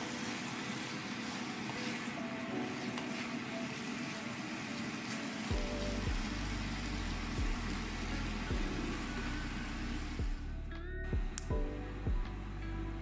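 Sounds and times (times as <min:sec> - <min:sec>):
tofu sizzling in a pan: 0:00.0 - 0:10.4
background music with bass beat: 0:05.5 - 0:13.0.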